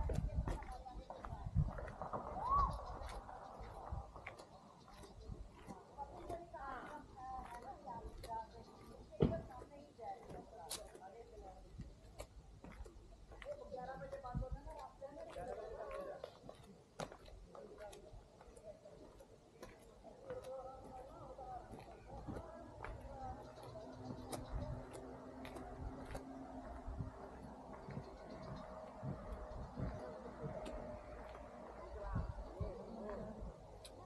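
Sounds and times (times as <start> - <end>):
faint voices talking: 0.0 - 34.0
footsteps on concrete: 0.0 - 34.0.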